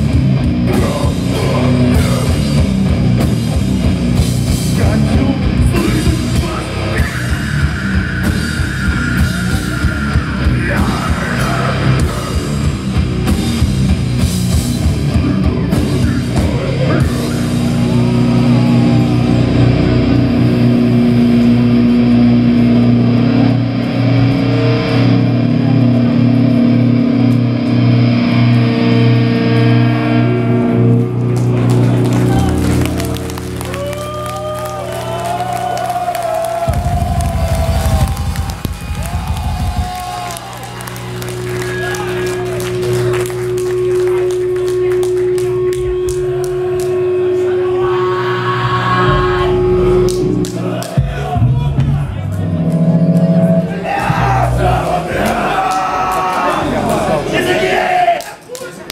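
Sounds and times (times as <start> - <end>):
sliding guitar tones: 0.0 - 57.9
distorted electric guitars: 0.0 - 58.9
drums: 0.0 - 58.9.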